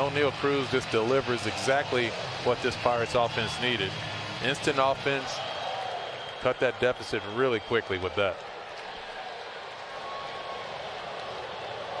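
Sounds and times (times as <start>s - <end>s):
ballpark crowd hubbub: 0.0s - 12.0s.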